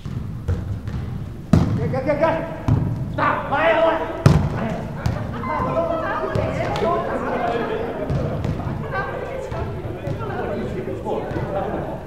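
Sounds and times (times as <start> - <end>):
volleyball smack: 0.0 - 1.9
voices talking and calling: 2.3 - 12.0.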